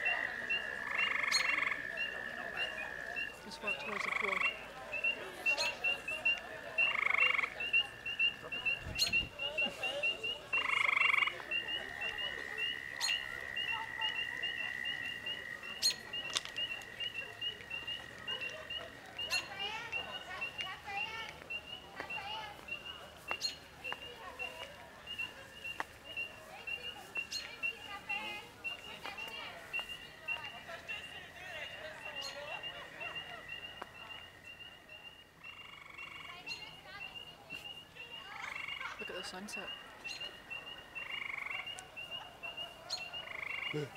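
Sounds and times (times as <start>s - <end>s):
frogs trilling: 0.0s - 43.9s.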